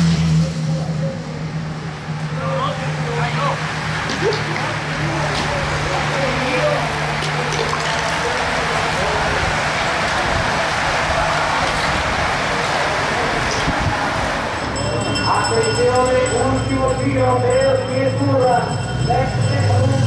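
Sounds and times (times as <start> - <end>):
faint spectators' voices: 0.4 - 16.0
bicycles rushing past: 2.1 - 17.5.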